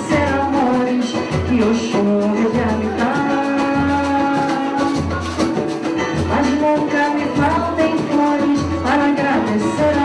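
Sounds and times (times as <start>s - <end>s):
woman singing into a microphone: 0.0s - 5.2s, 5.9s - 10.0s
percussion group playing: 0.0s - 10.0s.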